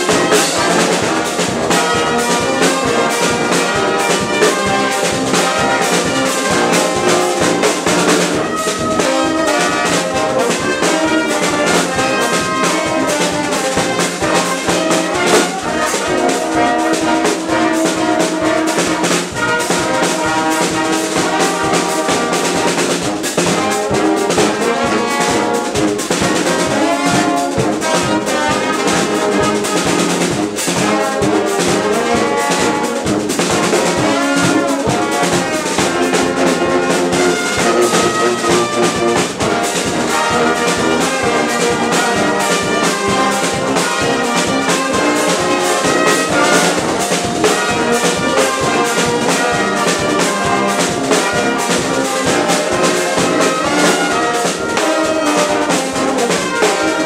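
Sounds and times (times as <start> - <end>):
brass band playing: 0.0 - 57.0
snare and bass drum: 0.0 - 57.0.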